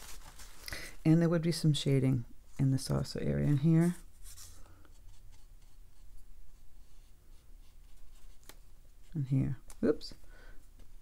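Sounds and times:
paintbrush stroking on paper: 2.5s - 9.2s.

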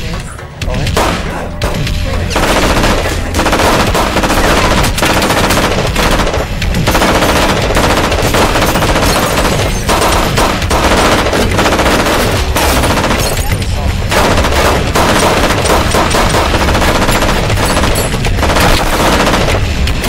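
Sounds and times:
automatic gunfire: 0.9s - 20.0s.

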